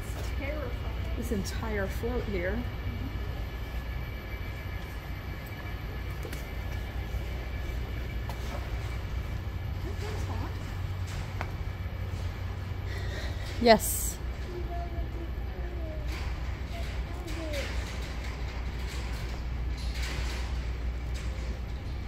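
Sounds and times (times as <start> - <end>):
hall rumble and hiss: 0.0 - 22.0
faint voices: 12.8 - 18.2.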